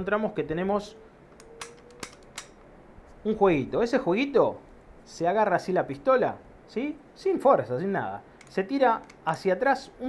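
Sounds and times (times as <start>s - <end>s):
faint pistol handling clicks: 1.3s - 2.7s, 8.4s - 9.3s.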